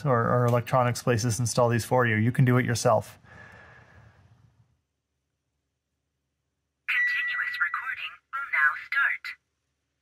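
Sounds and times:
tinny recorded voice announcement: 0:06.9 - 0:09.4.

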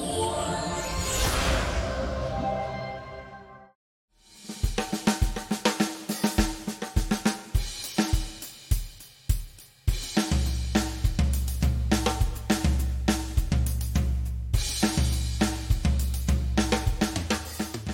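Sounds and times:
drum kit beat: 0:04.3 - 0:17.9.

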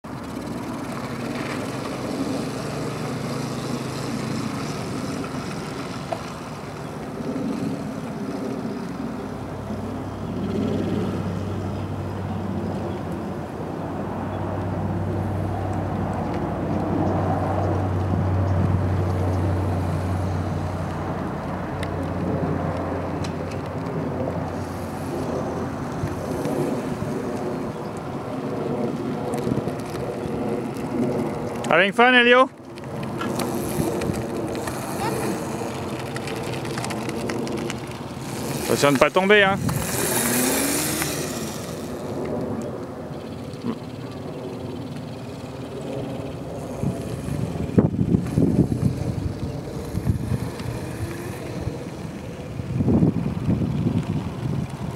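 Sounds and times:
small electric motor humming: 0:18.6 - 0:21.8, 0:32.9 - 0:42.5, 0:43.2 - 0:54.7.

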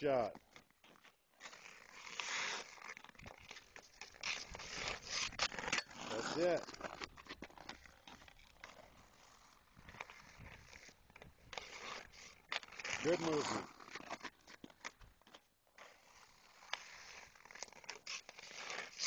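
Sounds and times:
skates scraping on ice: 0:00.1 - 0:19.0
hockey stick clicking on puck: 0:00.5 - 0:19.0.

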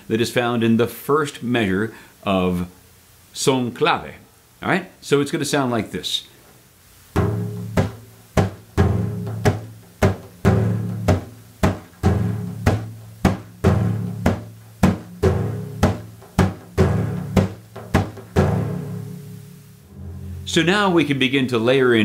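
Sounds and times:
frame drum played by hand: 0:07.2 - 0:21.0.

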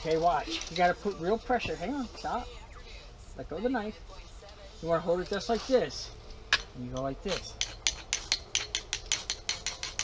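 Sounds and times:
knife scraping ferro rod: 0:07.3 - 0:10.0.

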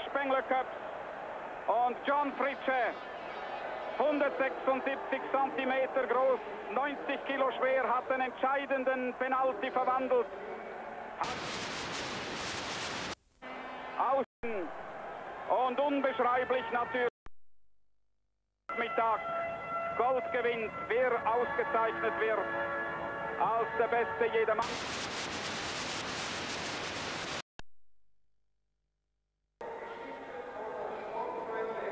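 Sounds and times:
tape static hiss: 0:11.2 - 0:13.6, 0:24.6 - 0:27.4.

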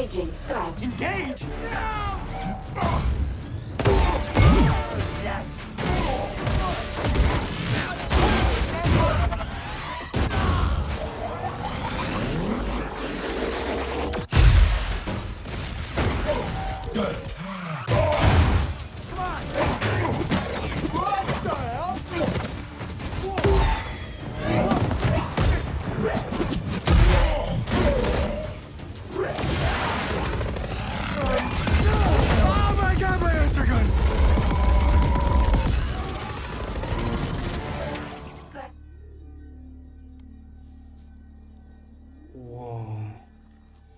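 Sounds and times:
action film music: 0:00.0 - 0:43.9
voice: 0:31.2 - 0:34.0.

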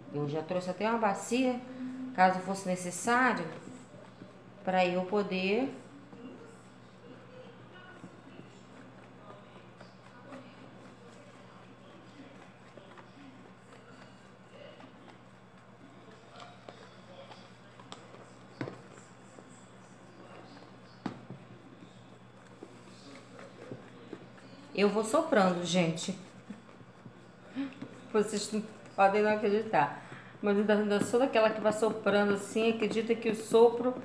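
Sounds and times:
steady low hum: 0:00.0 - 0:34.0
wooden spoon stirring in tub: 0:02.4 - 0:34.0.

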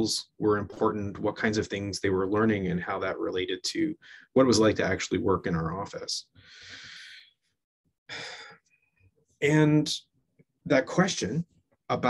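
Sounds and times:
man breathing: 0:06.4 - 0:07.4, 0:08.1 - 0:09.0.

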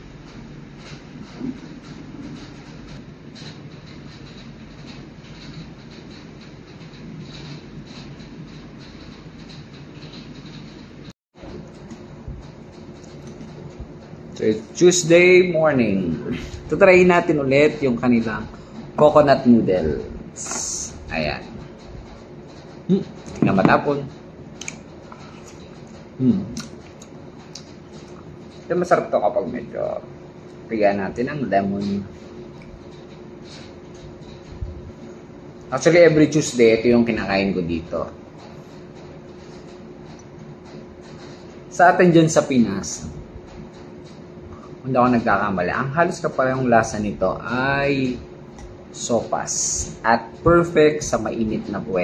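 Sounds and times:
low room hum: 0:00.0 - 0:52.0
low rumbling background noise: 0:00.0 - 0:52.0.

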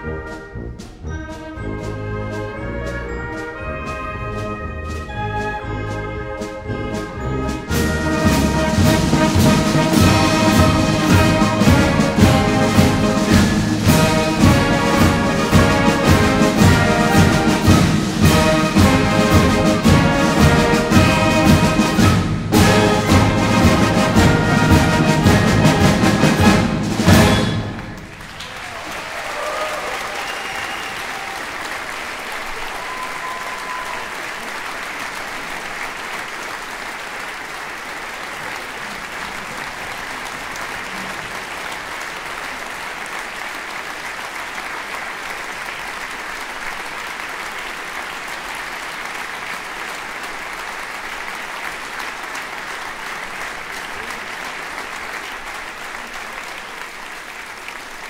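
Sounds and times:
audience applauding: 0:07.5 - 0:58.0.

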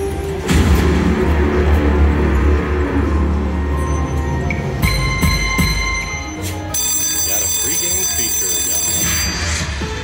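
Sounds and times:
bright bell-like chime: 0:05.0 - 0:10.0
slot machine reels clicking: 0:06.8 - 0:09.4.

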